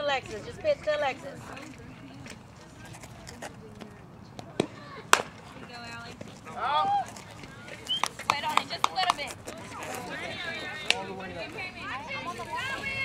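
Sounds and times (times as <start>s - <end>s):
voices shouting: 6.5s - 13.0s.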